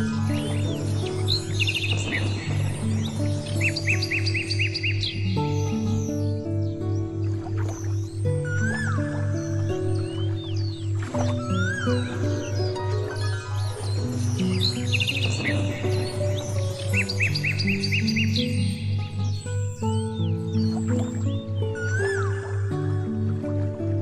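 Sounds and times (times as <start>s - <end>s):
birds chirping and trilling: 0.0s - 24.0s
instrumental background music: 0.0s - 24.0s.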